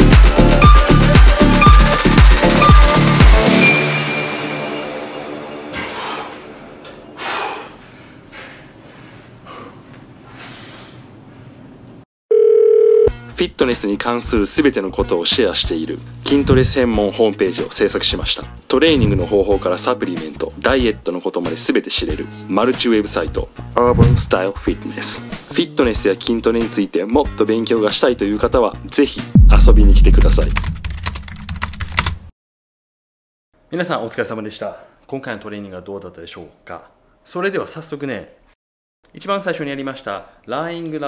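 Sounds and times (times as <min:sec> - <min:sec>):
loud electronic beep: 0:00.6 - 0:04.6
low rumble: 0:16.3 - 0:17.0, 0:23.8 - 0:24.4, 0:29.4 - 0:30.8
keyboard typing: 0:30.2 - 0:32.2.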